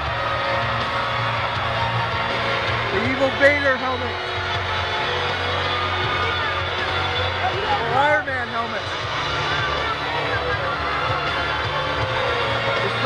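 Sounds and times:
crowd shouting: 0.0s - 13.0s.

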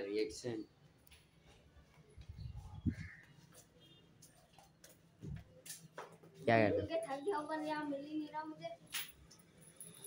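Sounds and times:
soft footsteps: 1.1s - 6.6s.

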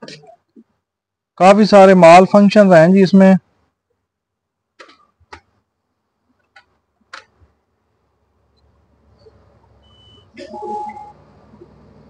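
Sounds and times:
short high beep: 9.8s - 11.2s.

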